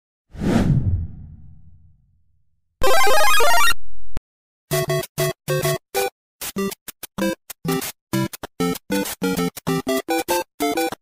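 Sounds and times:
whoosh swish: 0.4s - 1.9s
low rumble: 0.4s - 2.2s.

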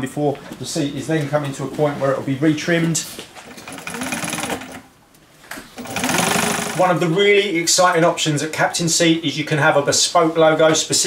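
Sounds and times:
industrial sewing machine stitching: 3.5s - 4.9s, 5.8s - 7.0s.

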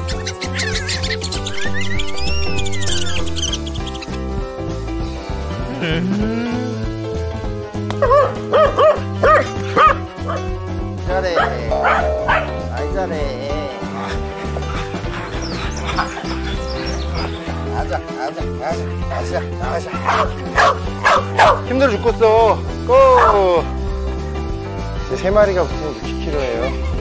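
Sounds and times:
background music: 0.0s - 27.0s
dogs barking: 7.9s - 10.6s, 11.2s - 12.8s, 13.6s - 23.8s.

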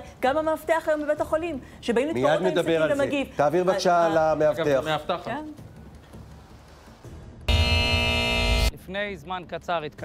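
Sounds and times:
musical chord with heavy bass: 7.5s - 8.7s.

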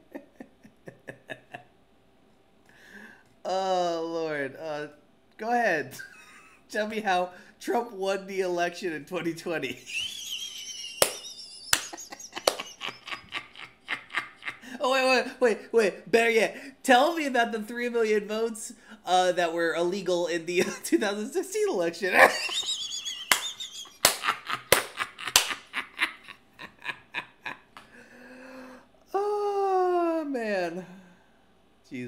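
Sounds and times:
man laughing squeakily: 9.8s - 14.7s, 22.2s - 27.8s
sharp hand claps: 11.0s - 12.8s, 23.3s - 25.6s.

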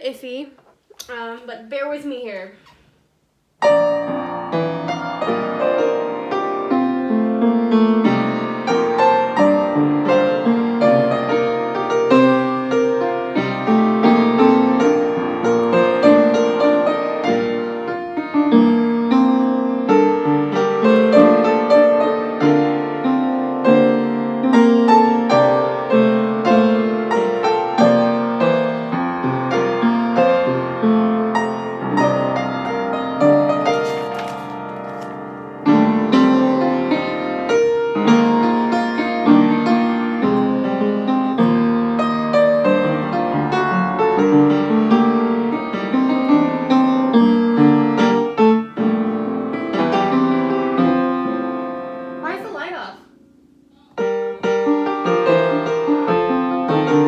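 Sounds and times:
upright piano playing: 3.6s - 57.0s.

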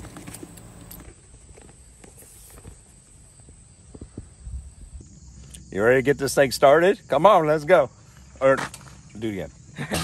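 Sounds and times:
leather bag rustling: 0.0s - 2.8s.

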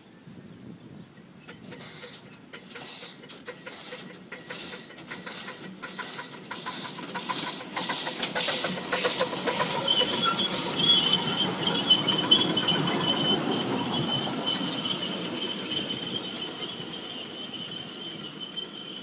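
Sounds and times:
steam locomotive exhaust chuffing: 1.4s - 19.0s
high-pitched wheel squeal: 1.5s - 19.0s.

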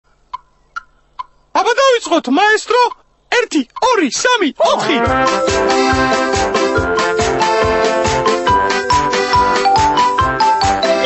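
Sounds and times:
cartoon voice calling out: 4.3s - 5.2s.

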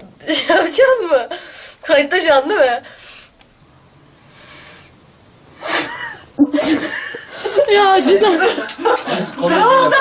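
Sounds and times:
sharp burst of breath: 2.8s - 3.4s, 4.1s - 6.0s
girl laughing: 5.7s - 10.0s.

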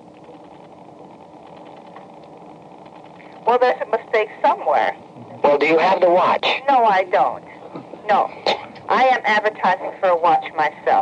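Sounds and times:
telephone line hiss and hum: 0.0s - 11.0s.

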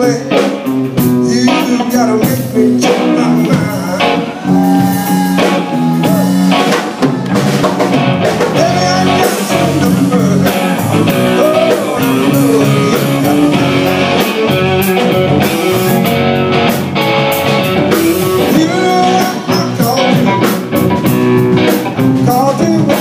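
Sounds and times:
live blues band: 0.0s - 23.0s.

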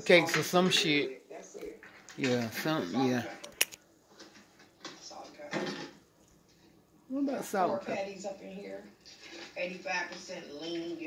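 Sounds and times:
faint television audio: 0.0s - 11.0s.

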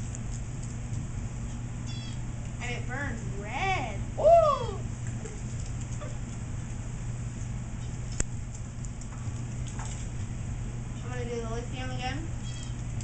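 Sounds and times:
bunsen burner flame humming: 0.0s - 13.0s.

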